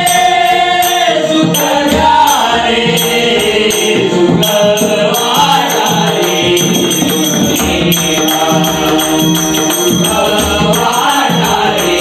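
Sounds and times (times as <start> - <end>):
barrel drum: 0.0 - 12.0
group singing in chorus: 0.0 - 12.0.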